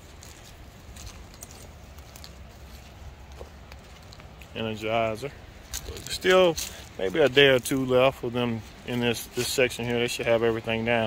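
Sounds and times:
footsteps through grass: 0.0s - 11.0s
steady low rumble: 0.0s - 11.0s.

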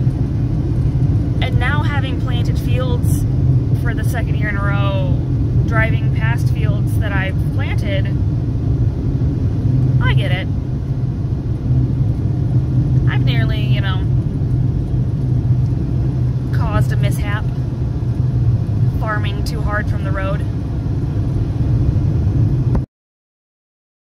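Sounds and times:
car cabin road rumble: 0.0s - 22.9s
woman's voice: 1.4s - 3.2s, 3.8s - 8.2s, 10.0s - 10.5s, 13.1s - 14.1s, 16.5s - 17.6s, 18.9s - 20.5s.

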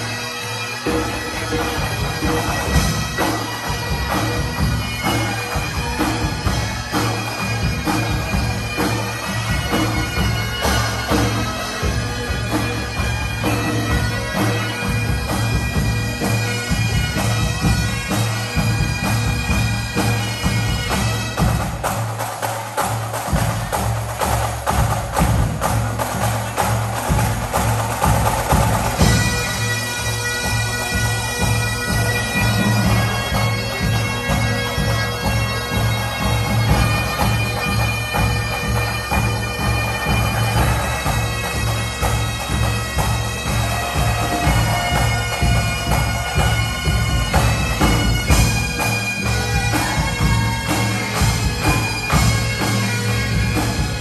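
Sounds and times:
bagpipe band playing: 0.0s - 54.0s.

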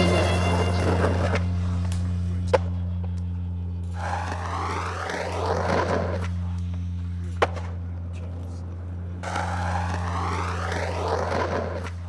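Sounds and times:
skateboard wheels rolling on asphalt: 0.0s - 12.0s
steady low hum: 0.0s - 12.0s.

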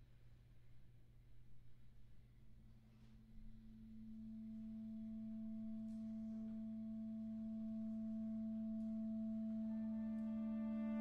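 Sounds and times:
clarinet long low note: 4.6s - 11.0s.

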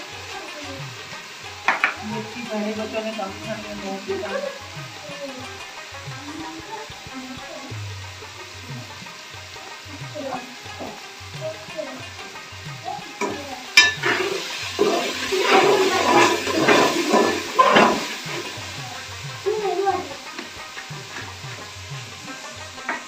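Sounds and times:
spatula scraping a steel pot: 13.8s - 18.6s.

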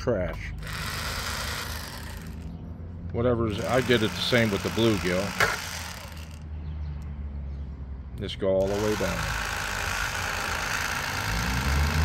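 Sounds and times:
electric fillet knife humming: 0.6s - 2.4s, 3.5s - 6.4s, 8.6s - 12.0s.

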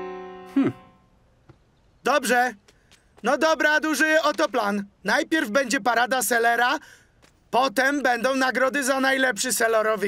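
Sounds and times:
piano chord ringing: 0.0s - 1.0s
person humming: 0.5s - 0.9s.

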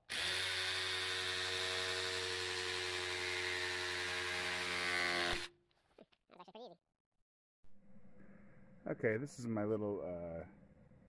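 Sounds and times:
reciprocating saw cutting plastic pipe: 0.0s - 5.5s.

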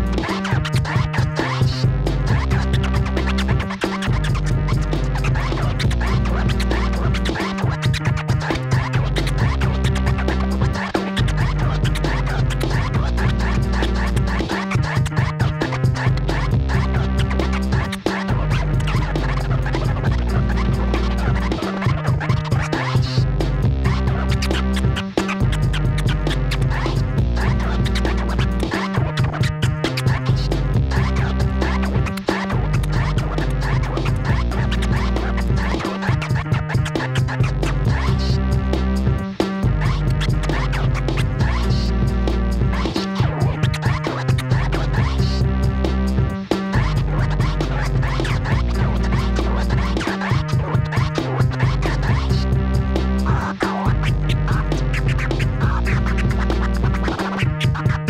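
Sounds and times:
beat with heavy bass: 0.0s - 58.0s
vinyl record scratching: 0.0s - 58.0s.

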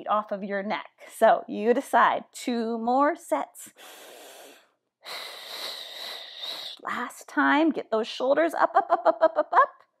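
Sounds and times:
woman breathing through mouth: 3.8s - 6.8s.

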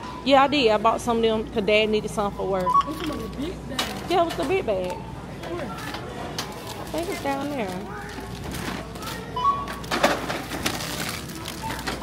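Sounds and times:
scanner beep: 2.4s - 3.3s
rustling and clatter of bags: 5.4s - 12.0s.

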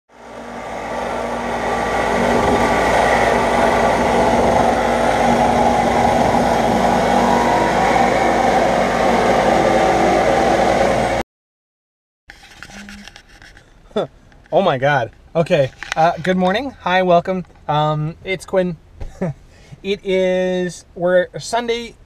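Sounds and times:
car engine running: 0.1s - 11.2s.

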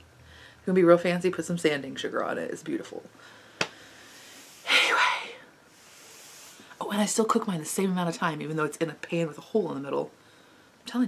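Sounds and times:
woman breathing in: 3.2s - 6.8s.

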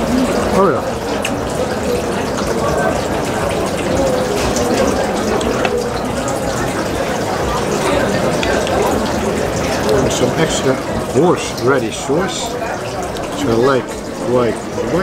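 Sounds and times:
many voices talking: 0.0s - 15.0s.

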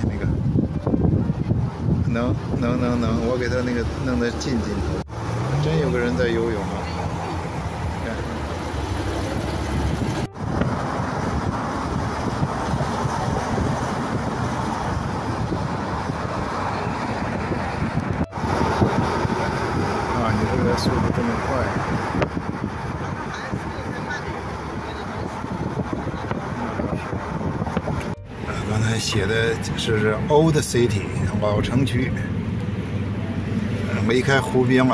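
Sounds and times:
wind on microphone: 0.0s - 4.0s, 6.8s - 28.7s
traffic: 0.0s - 34.9s.

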